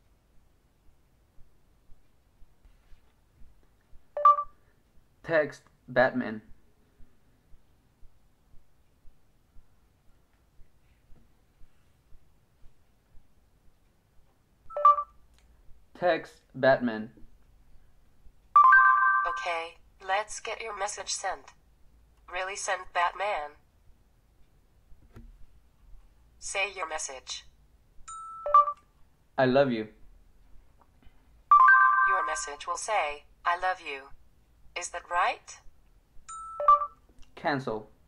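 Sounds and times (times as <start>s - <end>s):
phone prompt beep: 4.2s - 4.6s, 14.7s - 15.1s, 28.1s - 28.8s, 31.5s - 32.5s, 36.3s - 37.0s.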